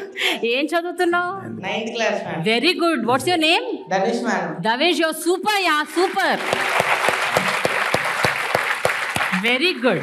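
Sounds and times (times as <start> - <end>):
steady rhythmic clapping: 5.5 - 10.0
children applauding: 5.9 - 9.6.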